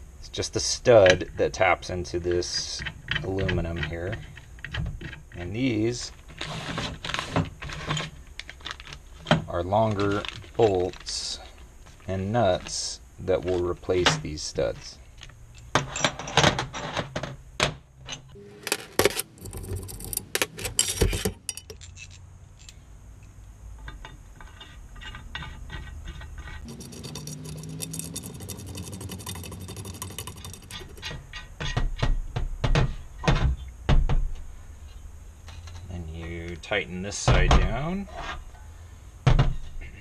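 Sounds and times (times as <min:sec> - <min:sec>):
metal bolts clinking on metal plate: 0:18.1 - 0:22.8, 0:26.6 - 0:31.8.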